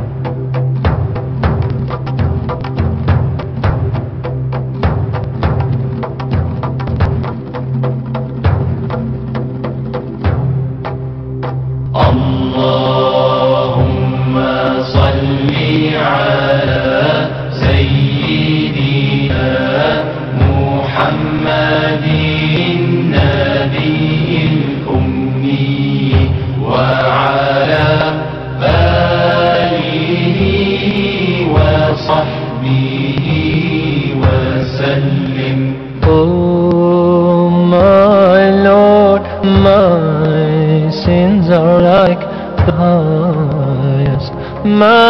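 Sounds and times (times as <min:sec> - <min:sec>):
low pulsing drone: 0:00.0 - 0:45.0
voice chanting long gliding notes: 0:11.8 - 0:45.0.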